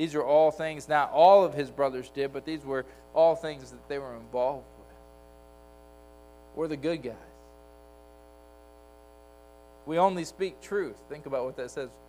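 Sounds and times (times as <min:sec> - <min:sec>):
man speaking: 0:00.0 - 0:04.9, 0:06.6 - 0:07.4, 0:09.9 - 0:12.0
electrical mains hum: 0:00.0 - 0:12.0.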